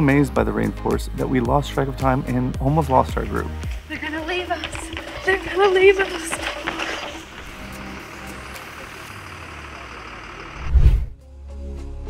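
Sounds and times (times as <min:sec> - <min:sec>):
vehicle engine and road noise: 0:00.0 - 0:11.6.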